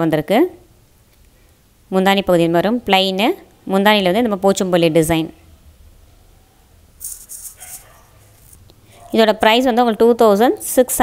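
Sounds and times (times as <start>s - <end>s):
fabric rustling: 7.0s - 9.1s.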